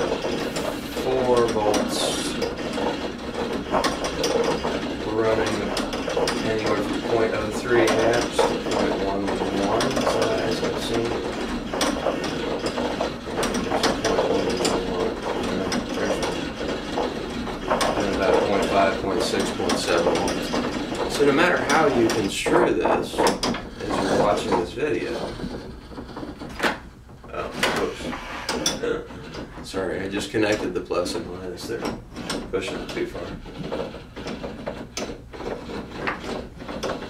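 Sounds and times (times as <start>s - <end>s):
motorized arm rattling: 0.0s - 37.0s.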